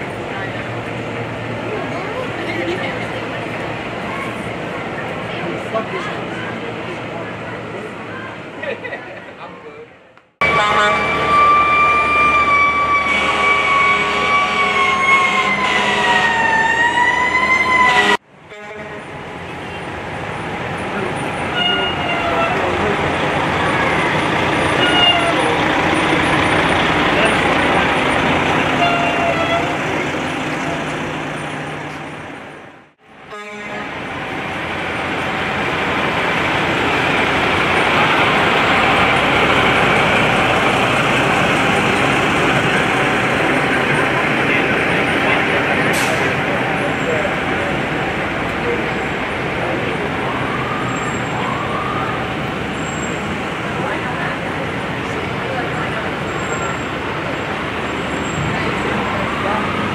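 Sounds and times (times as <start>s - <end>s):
truck engine approaching: 0.0s - 18.4s, 19.0s - 59.9s
fire engine rumble: 0.0s - 59.9s
siren: 10.4s - 18.2s, 49.6s - 53.1s, 58.2s - 59.9s.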